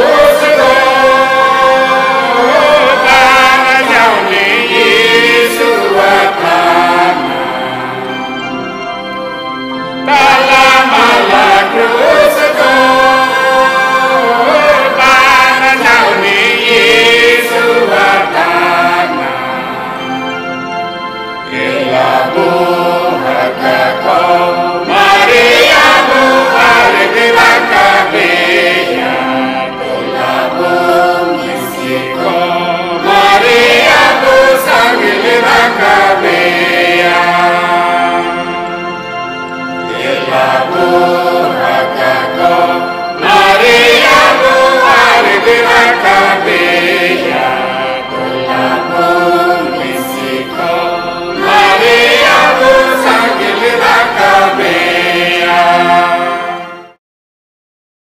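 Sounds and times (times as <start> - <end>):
choir singing a hymn: 0.0 - 57.0
held accompaniment: 0.0 - 57.0
person singing: 10.0 - 20.4, 21.5 - 38.8.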